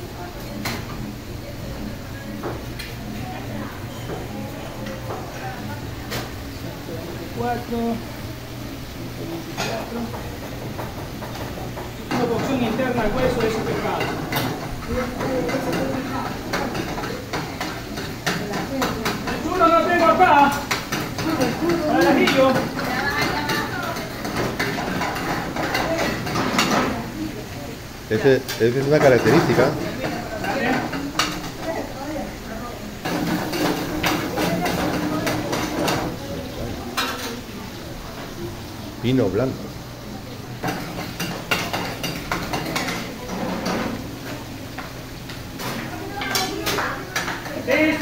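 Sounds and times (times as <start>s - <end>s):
background kitchen voices: 0.0s - 48.0s
metal pans clattering: 9.6s - 27.0s, 28.4s - 31.7s, 33.0s - 36.2s, 40.6s - 44.5s.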